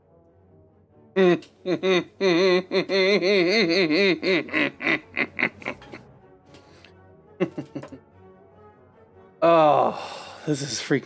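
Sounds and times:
man laughing hard: 0:01.2 - 0:06.0, 0:07.4 - 0:08.0.

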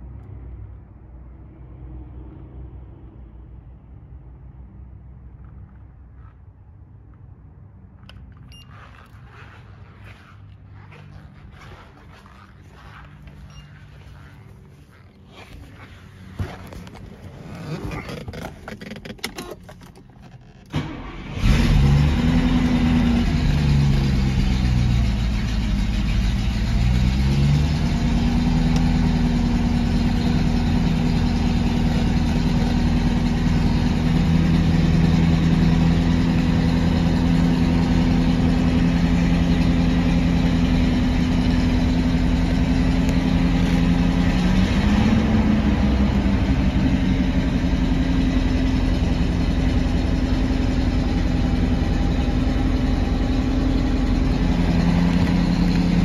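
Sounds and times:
car engine cranking and idling: 0:05.1 - 0:56.0.

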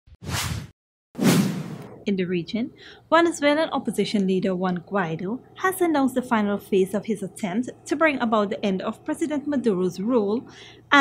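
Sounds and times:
swoosh sound effects: 0:00.2 - 0:02.0.

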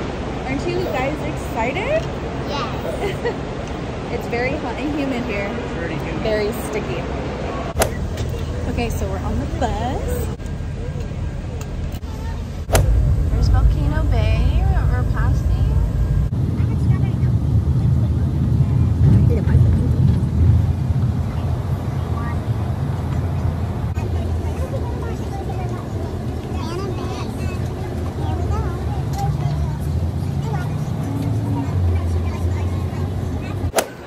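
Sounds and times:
bus engine rumble: 0:00.0 - 0:34.0
faint passenger voices: 0:00.0 - 0:34.0
road noise: 0:00.0 - 0:34.0
sharp knock: 0:12.7 - 0:13.0.

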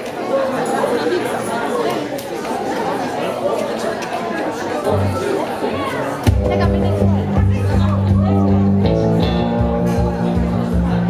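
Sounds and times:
audience chatter: 0:00.0 - 0:11.0
low instrument note: 0:06.3 - 0:11.0.

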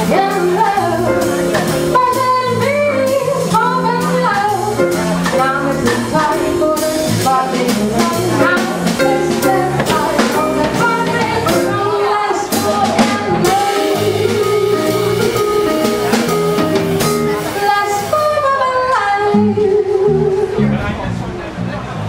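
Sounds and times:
woman singing into a microphone: 0:00.0 - 0:16.4, 0:17.0 - 0:20.7
drum kit: 0:00.0 - 0:18.6
electric bass: 0:00.0 - 0:22.0.

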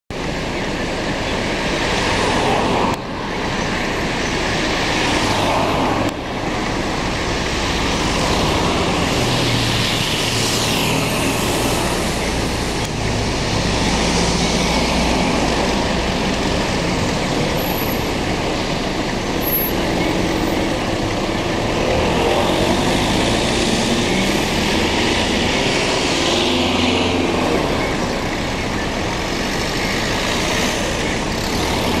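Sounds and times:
cars passing: 0:00.1 - 0:32.0.

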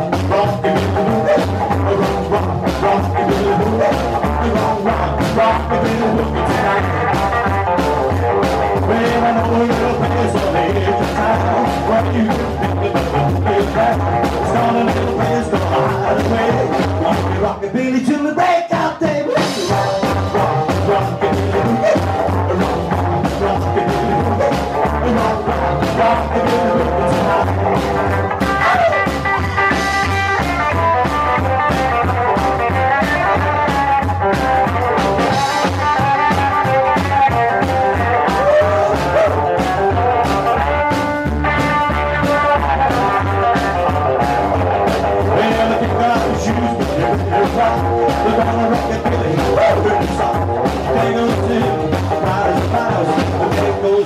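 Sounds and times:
rockabilly band playing: 0:00.0 - 0:54.0.

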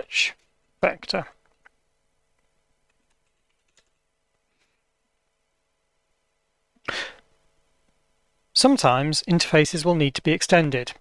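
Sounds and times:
burst of breath into microphone: 0:06.9 - 0:07.2.

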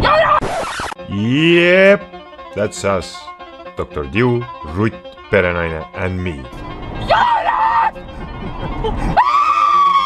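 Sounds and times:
woman screaming: 0:00.0 - 0:00.4, 0:07.1 - 0:07.9, 0:09.1 - 0:10.0.

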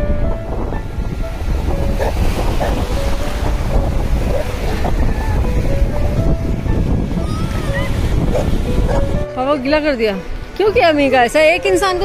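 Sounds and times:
sea surf breaking: 0:00.0 - 0:12.0
wind buffeting microphone: 0:00.0 - 0:12.0.

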